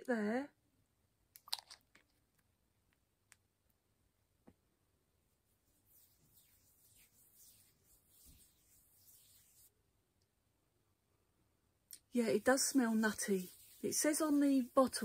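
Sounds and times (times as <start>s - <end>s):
hands rubbing oil into skin: 5.6s - 9.7s, 12.0s - 15.0s.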